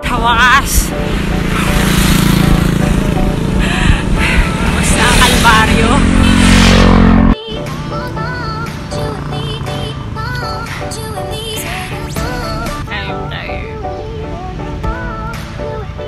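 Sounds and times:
wind rumbling on microphone: 0.6 - 7.4
motorcycle engine passing: 0.6 - 11.2
music with singing: 2.9 - 16.0.

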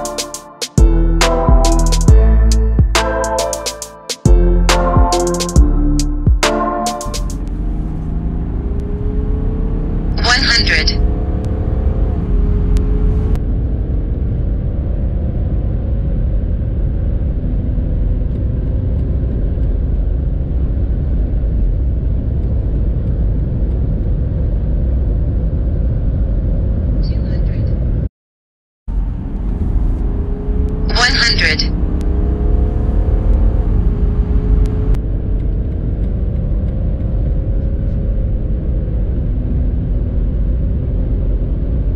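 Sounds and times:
car engine accelerating: 4.3 - 27.0, 28.9 - 41.9
road and tyre rumble: 7.2 - 28.1, 28.9 - 41.9.

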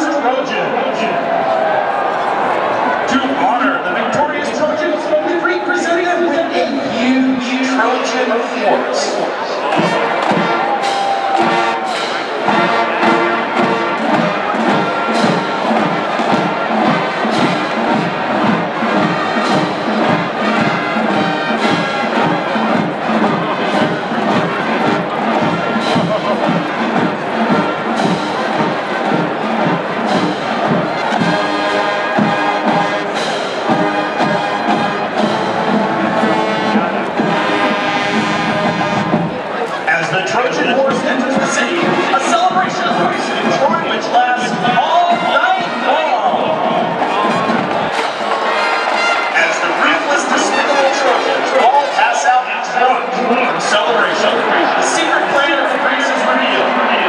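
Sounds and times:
marching band brass: 0.0 - 57.0
steady drum beat: 9.6 - 39.5.

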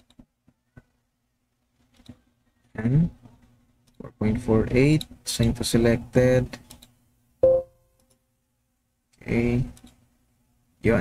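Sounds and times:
computer alert chime: 7.4 - 7.8.

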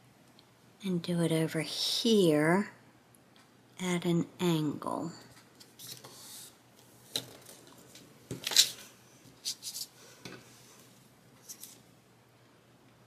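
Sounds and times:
paper rustling: 5.6 - 10.0, 11.4 - 11.8
tape rubbed onto paper: 9.4 - 10.0.

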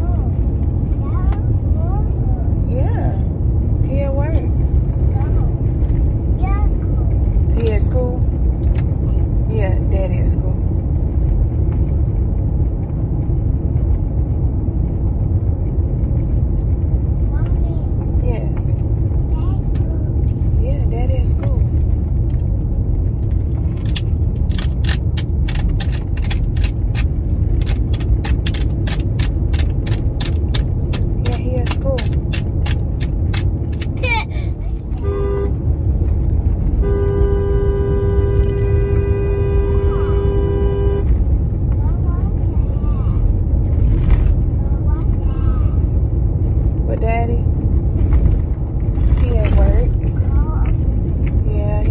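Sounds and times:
road and engine rumble: 0.0 - 51.9
car horn honking: 34.9 - 35.7, 36.7 - 41.2.

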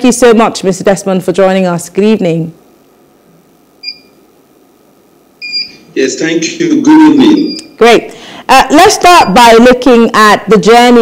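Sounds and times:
short electronic beep: 5.4 - 5.8.

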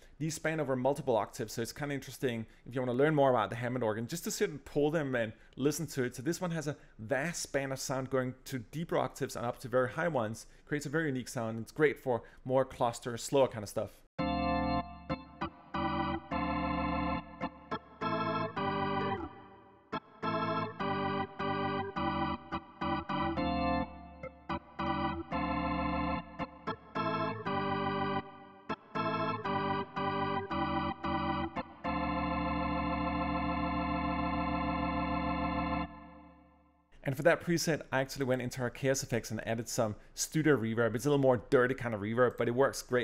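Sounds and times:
organ chords: 14.2 - 36.8.

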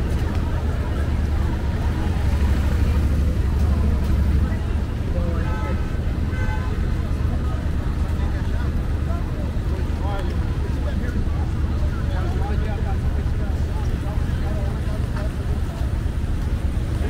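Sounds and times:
traffic rumble: 0.0 - 17.0.

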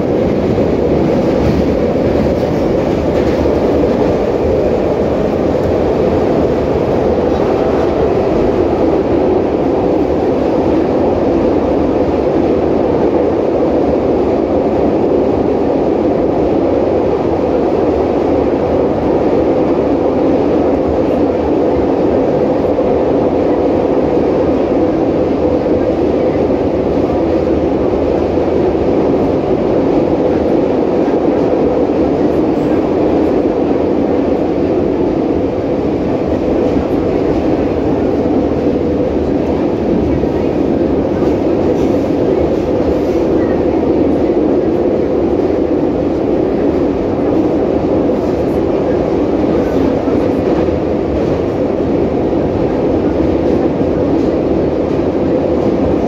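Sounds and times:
metro train rumbling in tunnel: 0.0 - 56.0.

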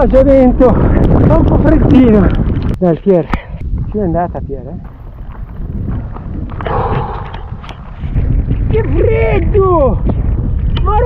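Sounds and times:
wind buffeting microphone: 0.0 - 11.0
breathy exclamation: 6.6 - 7.5.

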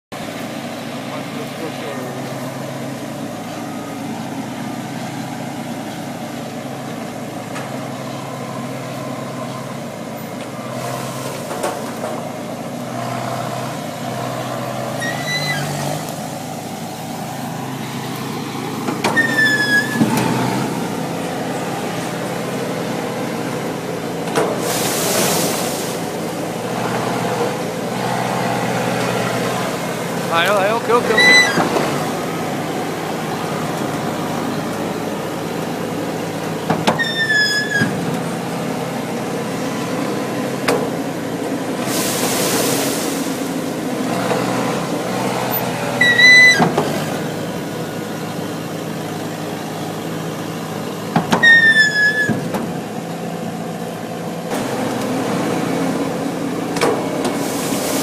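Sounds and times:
harvester engine running: 0.1 - 58.0
loud hiss: 41.8 - 43.9, 57.4 - 58.0.

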